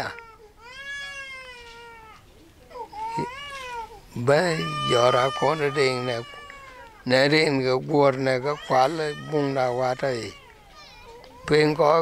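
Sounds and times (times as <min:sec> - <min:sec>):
high-pitched cries: 0:00.0 - 0:12.0
man speaking: 0:04.1 - 0:10.4, 0:11.4 - 0:12.0.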